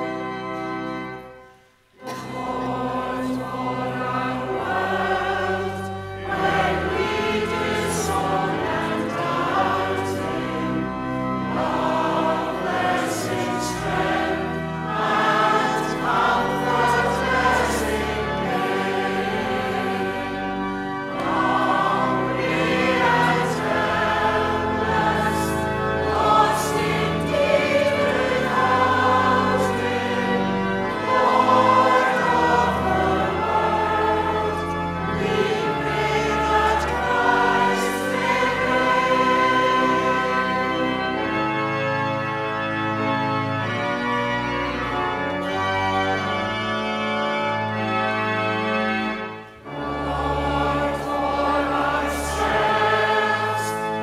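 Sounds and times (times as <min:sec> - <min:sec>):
congregation singing a hymn: 0:00.0 - 0:54.0
organ accompaniment: 0:00.0 - 0:54.0.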